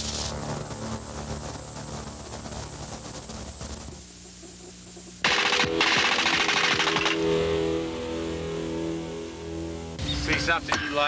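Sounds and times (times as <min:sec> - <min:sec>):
music with low tones: 0:00.0 - 0:11.0
rapid-fire gunshots: 0:05.2 - 0:07.4.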